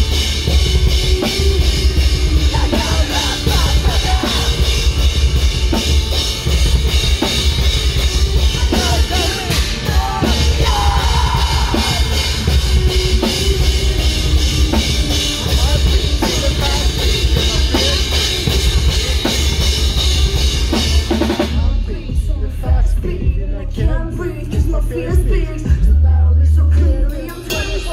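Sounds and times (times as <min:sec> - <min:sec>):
person singing: 0:00.0 - 0:05.9, 0:07.9 - 0:27.9
pounding drum kit: 0:00.0 - 0:27.9
rock band playing live: 0:00.0 - 0:27.9.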